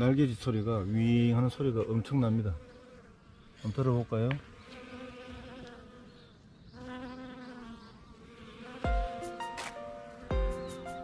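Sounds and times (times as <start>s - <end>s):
bees buzzing: 1.8s - 11.0s
music with struck notes and deep beats: 8.9s - 11.0s.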